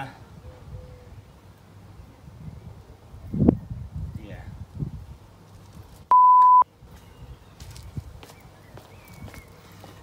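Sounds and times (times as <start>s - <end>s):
steady beep tone: 6.1s - 6.6s.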